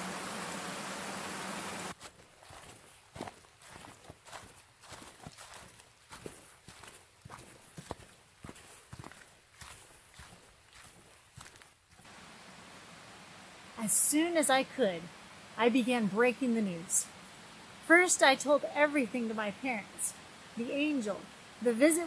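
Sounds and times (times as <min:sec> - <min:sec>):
rushing creek water: 0:00.0 - 0:22.0
footsteps through dry leaves: 0:01.9 - 0:12.1.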